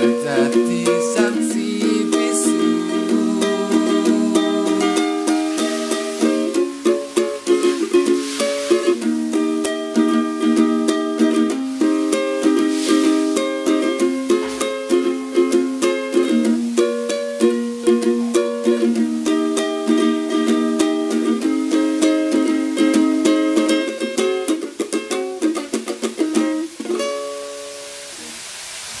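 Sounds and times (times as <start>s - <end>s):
ukulele strumming chords: 0.0s - 28.4s.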